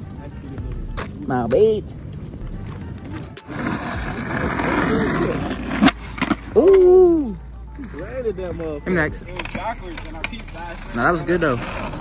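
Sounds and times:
skateboard wheels rolling on asphalt: 0.8s - 6.9s, 7.9s - 12.0s
skateboard clacking: 2.1s - 6.9s, 9.2s - 12.0s.

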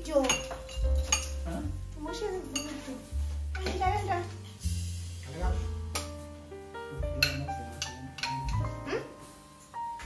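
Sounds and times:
metal spoon clinking on bowl: 0.2s - 1.5s, 7.2s - 8.6s.

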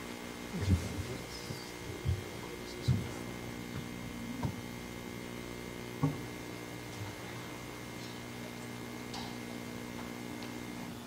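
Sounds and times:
electrical mains hum: 0.0s - 11.0s
low thumps: 1.8s - 4.8s.

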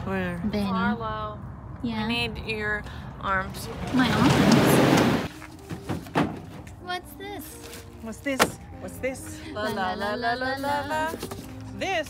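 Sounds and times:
dull knocks of heavy object: 5.7s - 6.6s.

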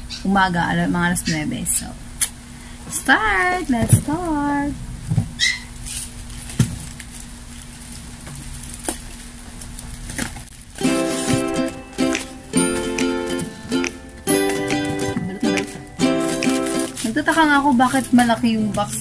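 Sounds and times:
cardboard parcel handling: 5.8s - 11.8s
plucked-string background music: 10.8s - 19.0s.

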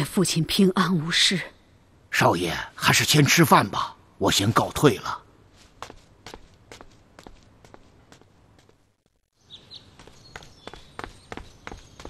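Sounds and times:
soft footsteps: 5.4s - 12.0s.

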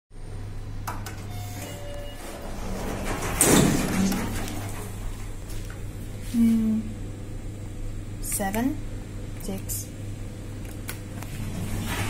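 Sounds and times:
steady low hum: 0.2s - 12.0s
lift doors sliding open: 1.0s - 5.6s, 11.4s - 12.0s.

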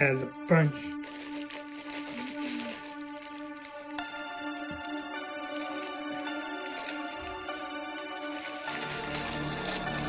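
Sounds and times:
background music: 0.0s - 10.0s
plastic bag crinkling: 0.3s - 10.0s.

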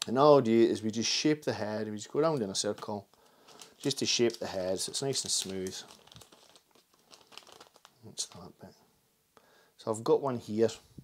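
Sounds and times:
foam crinkling: 2.5s - 8.5s.

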